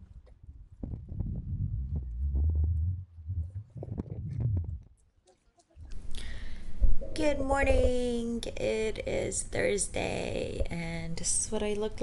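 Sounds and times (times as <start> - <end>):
wind buffeting microphone: 0.6 - 4.9.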